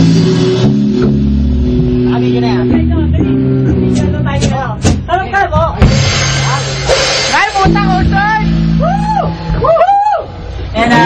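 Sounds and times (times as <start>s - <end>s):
distorted rock band: 0.0s - 11.0s.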